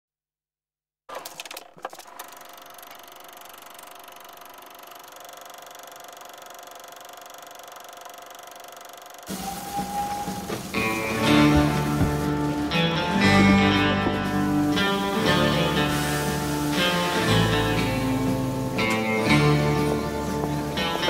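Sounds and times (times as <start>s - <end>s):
film projector whirring: 1.1s - 9.4s.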